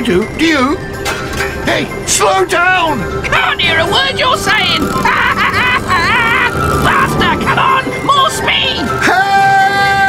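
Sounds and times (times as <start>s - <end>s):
cartoon background music: 0.0s - 10.0s
warbling voice-like cries: 3.6s - 10.0s.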